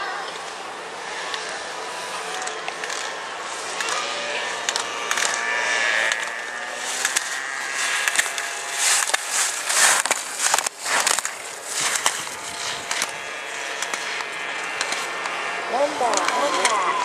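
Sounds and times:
skis scraping on icy snow: 1.0 - 17.0.

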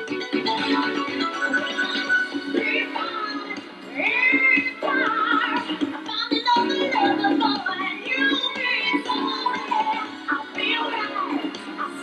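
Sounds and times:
backing track: 0.0 - 12.0
person singing: 0.0 - 12.0.

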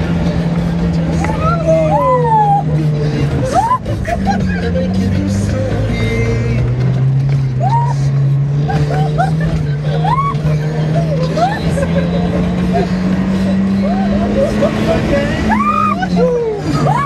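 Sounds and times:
off-road vehicle engine running hard: 0.0 - 17.0
people whooping and calling: 1.2 - 4.4, 7.6 - 8.1, 8.7 - 12.2, 13.8 - 17.0.

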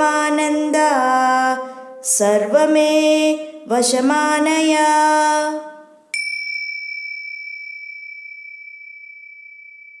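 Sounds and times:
small bell ringing: 6.2 - 10.0.

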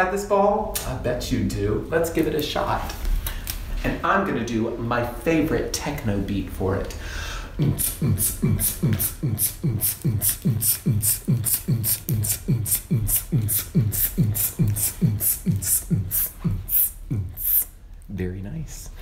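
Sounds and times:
man beatboxing techno beat: 7.5 - 17.8.

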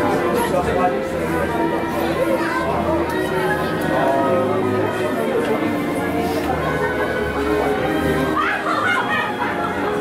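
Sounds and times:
background music: 0.0 - 10.0
children's and shoppers' voices: 0.0 - 10.0.

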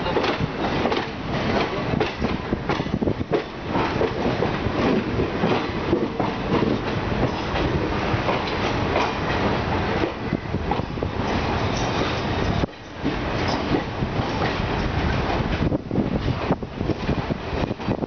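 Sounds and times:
train wheels clattering over rail joints: 0.0 - 18.0.

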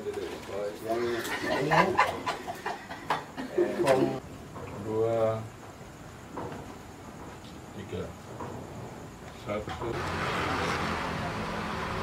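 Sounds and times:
voices in room: 0.0 - 11.5.

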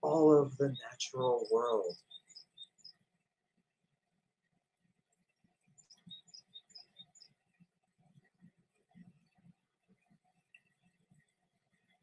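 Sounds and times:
faint bird chirping: 0.0 - 3.2, 5.1 - 12.0.

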